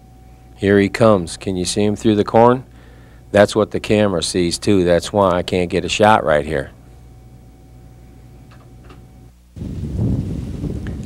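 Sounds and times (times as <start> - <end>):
low steady hum: 0.0 - 11.0
wind buffeting microphone: 9.6 - 11.0.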